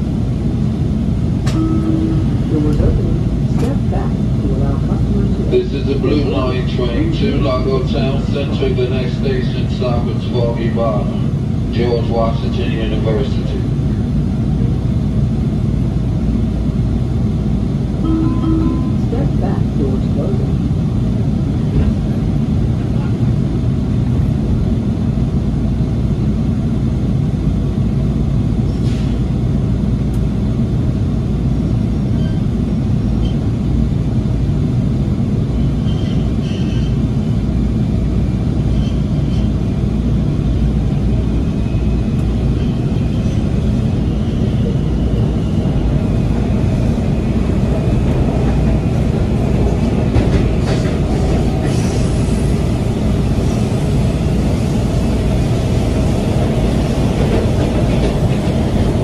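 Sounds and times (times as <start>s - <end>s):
faint high train whine: 0.0s - 59.0s
train low rumble: 0.0s - 59.0s.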